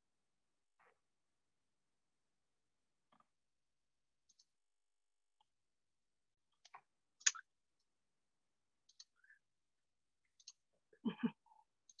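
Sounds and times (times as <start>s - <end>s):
computer mouse clicks: 4.2s - 4.6s, 6.5s - 7.9s, 8.8s - 9.4s, 10.3s - 10.7s, 11.8s - 12.0s.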